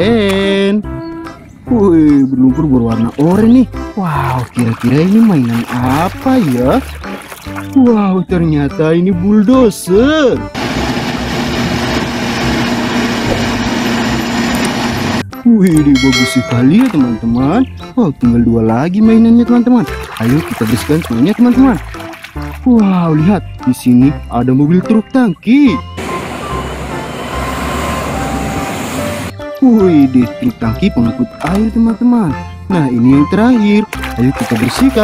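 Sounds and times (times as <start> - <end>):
truck driving past: 26.0 - 29.4.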